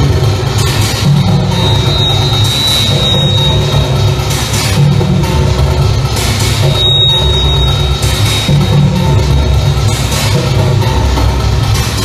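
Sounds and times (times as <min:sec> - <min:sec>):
electronic noise music: 0:00.0 - 0:12.0.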